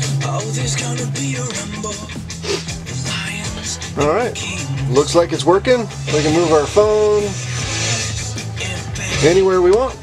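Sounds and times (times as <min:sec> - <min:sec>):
music from car radio: 0:00.0 - 0:10.0.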